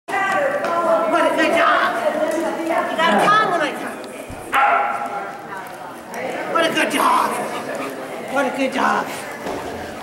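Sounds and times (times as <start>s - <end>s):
dog barking: 4.6s - 5.1s.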